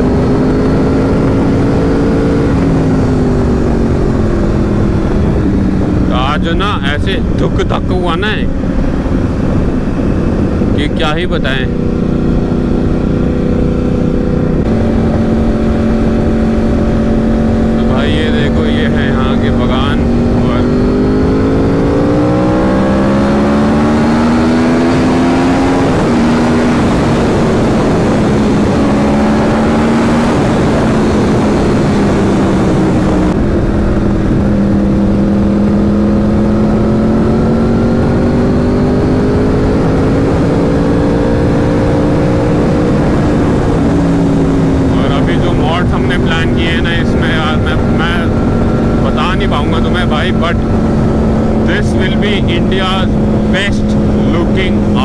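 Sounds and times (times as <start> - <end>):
motorcycle engine accelerating: 0.0 - 55.0
wind rushing over microphone: 0.0 - 55.0.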